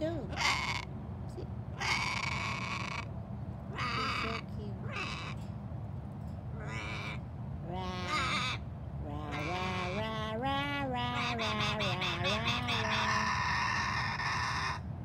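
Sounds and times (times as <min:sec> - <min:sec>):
steady low rumble: 0:00.0 - 0:15.0
crow cawing: 0:00.4 - 0:00.9, 0:01.8 - 0:03.1, 0:03.8 - 0:05.4, 0:06.6 - 0:07.2, 0:08.1 - 0:08.6, 0:11.2 - 0:14.8.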